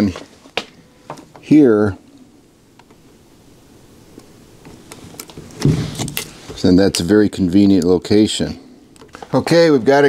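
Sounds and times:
thump on panel: 5.6s - 6.2s.

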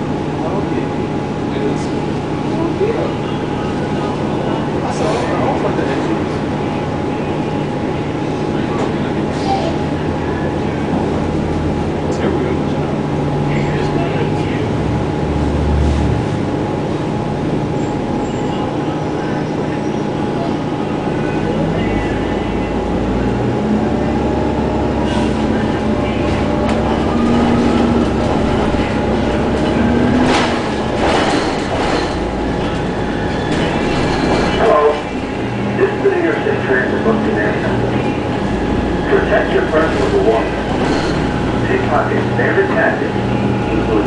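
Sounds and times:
bus drive whine and road rumble: 0.0s - 44.0s.

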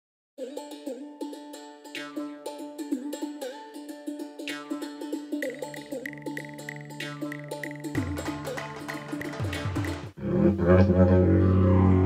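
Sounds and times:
plucked-string melody: 0.4s - 12.0s
low bass line: 10.2s - 12.0s.

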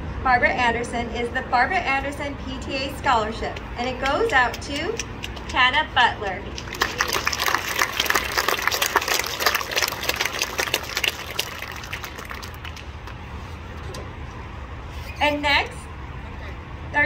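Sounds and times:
audience applauding: 6.6s - 13.2s.

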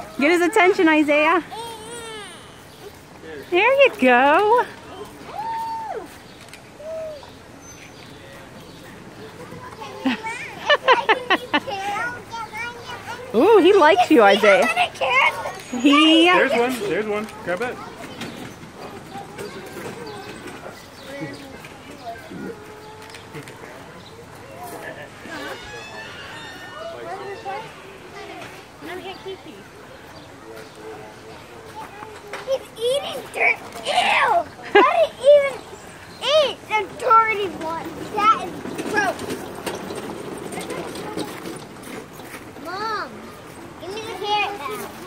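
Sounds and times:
background chatter of visitors: 0.0s - 45.0s
faint voices talking: 0.0s - 45.0s.

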